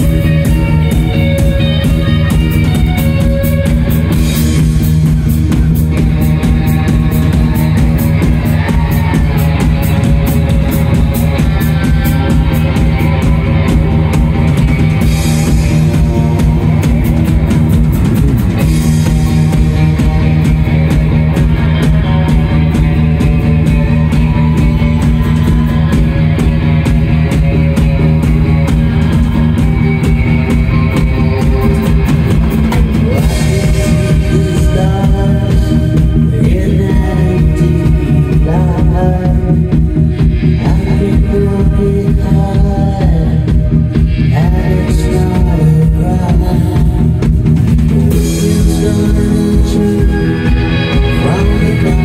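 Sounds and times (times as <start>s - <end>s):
drum kit beat: 0.0s - 52.0s
electric bass: 0.0s - 52.0s
electric guitar: 0.0s - 52.0s.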